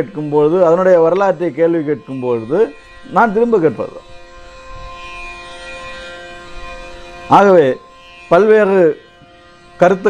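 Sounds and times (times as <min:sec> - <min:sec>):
instrumental drone music: 0:00.0 - 0:10.0.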